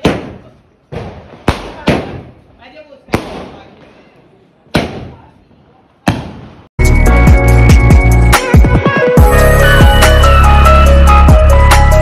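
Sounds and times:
fireworks bangs: 0.0 - 6.7.

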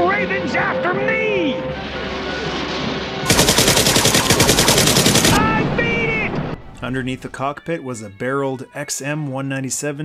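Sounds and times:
machine-gun fire: 3.3 - 7.3.

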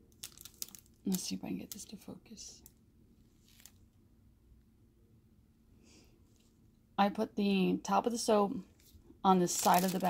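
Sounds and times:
faint steady hum: 0.0 - 10.0
plastic bag rustling: 0.1 - 1.9, 3.3 - 3.8, 8.8 - 10.0.

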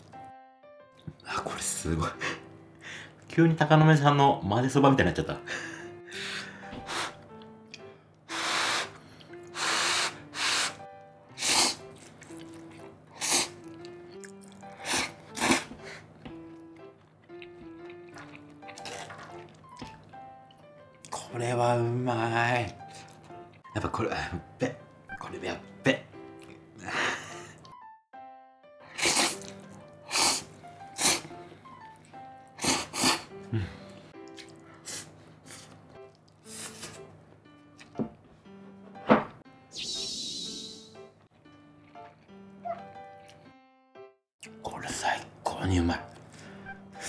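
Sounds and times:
light background music: 0.0 - 47.0
man slurping noodles: 8.3 - 10.8, 11.4 - 13.8, 14.4 - 15.9, 28.9 - 31.4, 32.6 - 33.3.

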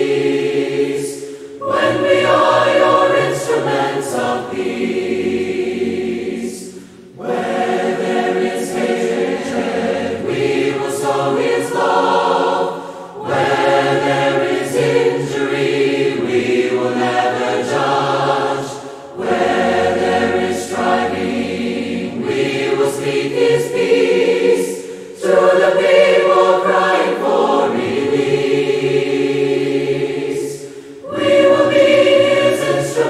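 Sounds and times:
mixed choir singing a hymn: 0.0 - 33.0.

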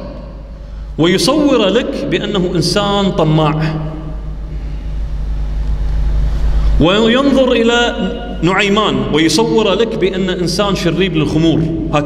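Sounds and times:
low steady rumble: 0.0 - 12.0.

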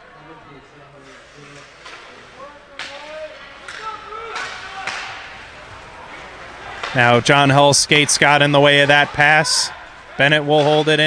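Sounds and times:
faint voices echoing in arena: 0.0 - 11.0
hockey stick cracks on puck: 3.6 - 5.4.

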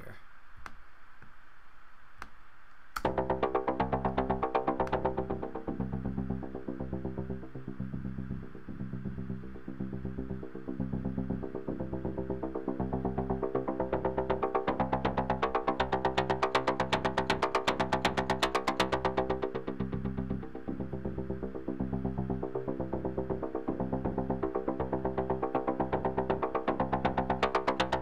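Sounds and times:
gritty sequenced synth line: 3.0 - 28.0.

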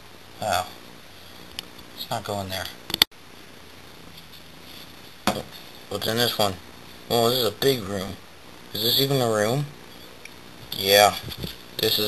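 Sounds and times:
low hiss of room tone: 0.0 - 12.0.

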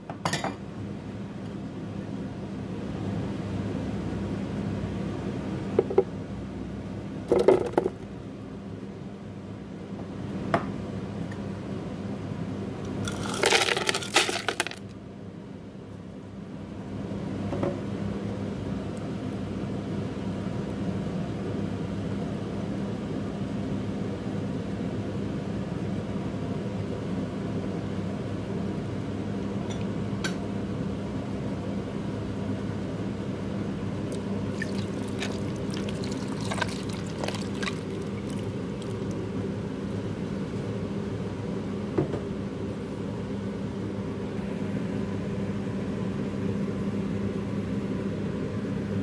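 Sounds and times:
low hum and rumble: 0.0 - 24.4, 28.4 - 49.0.

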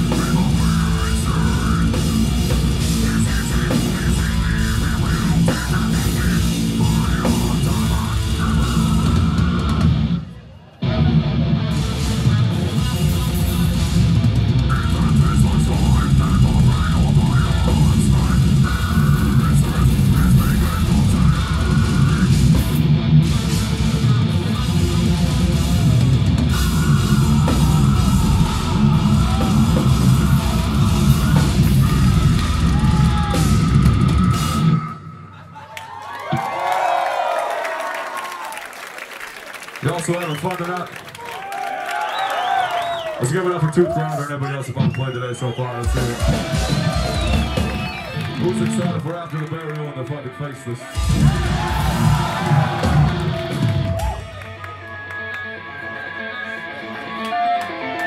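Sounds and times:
death metal band playing: 0.0 - 35.4, 45.8 - 49.8, 50.6 - 58.0
crowd cheering and shouting: 0.0 - 58.0.

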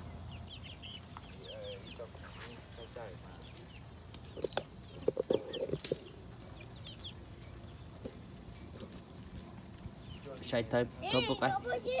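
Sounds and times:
chicks peeping: 0.0 - 11.6.

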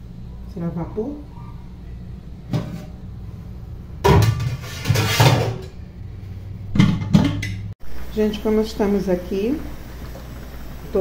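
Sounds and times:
steady low hum: 0.0 - 11.0
metal pans clattering: 2.5 - 2.9, 4.0 - 5.8, 6.7 - 7.7
sharp knocks on metal pans: 4.0 - 5.7, 6.7 - 7.7.

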